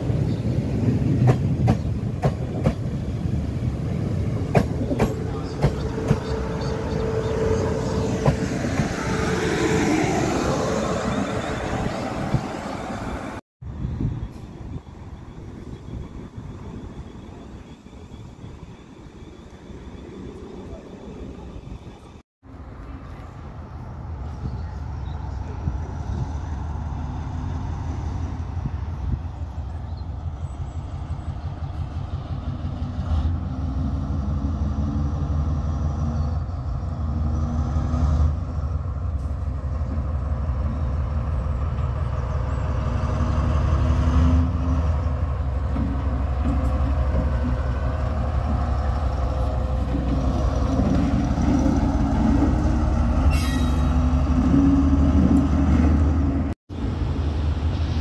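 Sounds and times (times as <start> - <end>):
diesel locomotive engine drone: 0.0 - 58.0.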